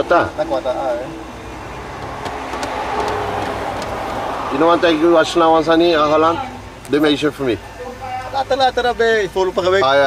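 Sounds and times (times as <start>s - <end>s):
cars driving past: 0.0s - 7.3s.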